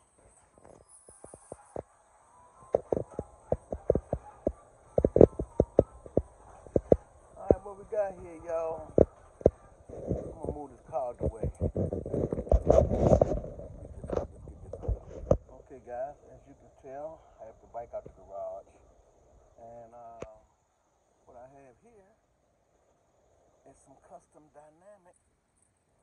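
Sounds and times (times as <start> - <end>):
man speaking indistinctly: 7.4 - 9.1, 10.0 - 11.8, 14.2 - 18.8.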